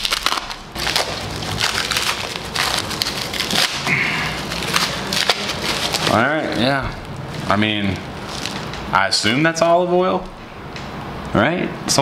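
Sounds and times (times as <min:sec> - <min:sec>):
wrapping crinkling and tearing: 0:00.0 - 0:08.8.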